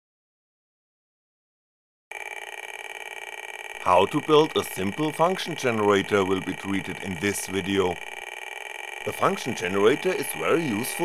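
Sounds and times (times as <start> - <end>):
piezo buzzer buzzy tone: 2.1 - 11.0.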